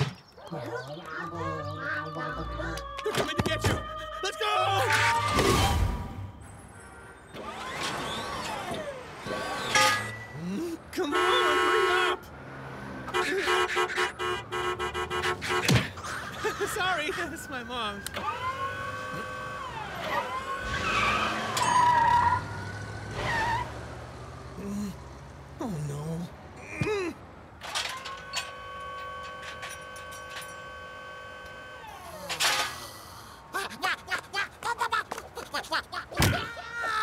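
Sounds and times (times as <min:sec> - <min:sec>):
vehicle passing: 0:12.2 - 0:13.2
car tyres screeching: 0:18.2 - 0:24.5.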